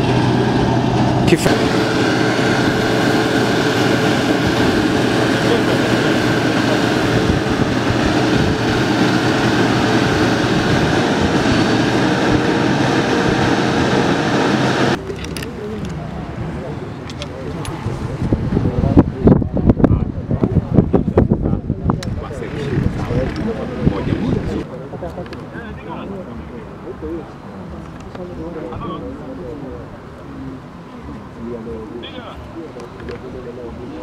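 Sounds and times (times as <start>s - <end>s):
truck engine and water cannon drone: 0.0s - 20.8s.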